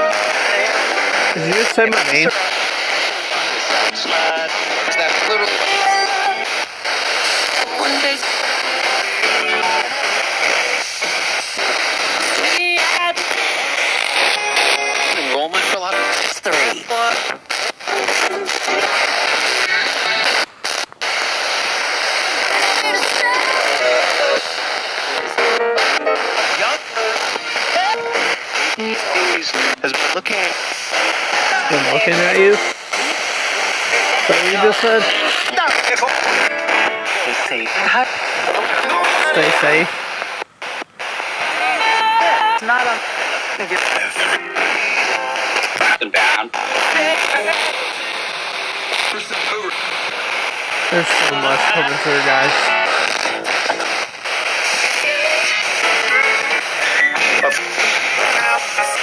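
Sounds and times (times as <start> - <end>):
radio static hiss: 0.0 - 59.0
snatches of broadcast music: 0.0 - 59.0
snatches of broadcast voices: 0.0 - 59.0.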